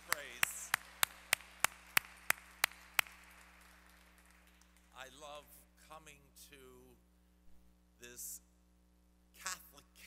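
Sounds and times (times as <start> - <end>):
man clapping hands: 0.0 - 5.2.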